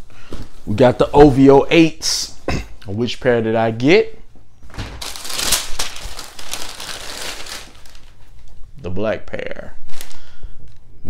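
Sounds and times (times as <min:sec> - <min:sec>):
tissue paper crinkling: 0:04.7 - 0:08.6.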